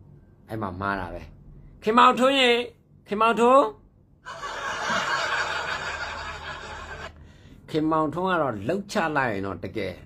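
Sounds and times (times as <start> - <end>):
man laughing: 4.3 - 7.1.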